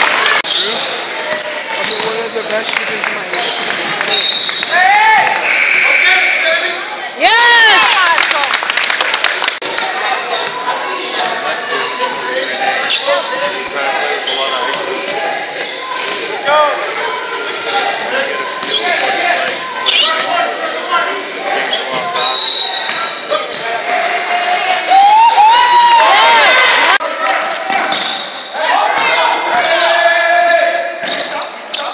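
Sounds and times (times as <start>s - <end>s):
shoes squeaking: 0.4s - 7.2s, 9.6s - 24.7s.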